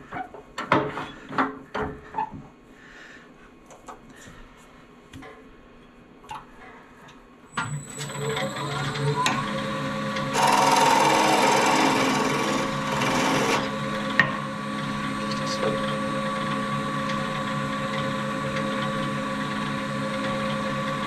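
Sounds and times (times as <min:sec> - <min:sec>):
wood lathe motor whine: 0:07.9 - 0:21.0
gouge cutting spinning wood: 0:10.1 - 0:14.2.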